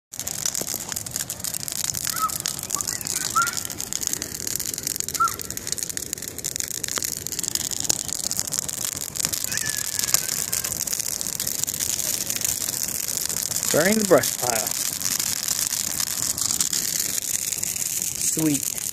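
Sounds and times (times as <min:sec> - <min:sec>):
fire crackling and popping: 0:00.1 - 0:18.9.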